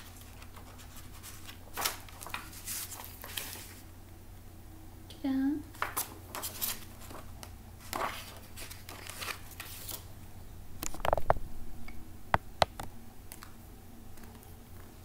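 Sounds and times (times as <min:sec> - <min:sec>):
book pages rustling: 0:00.0 - 0:03.9, 0:05.7 - 0:10.1.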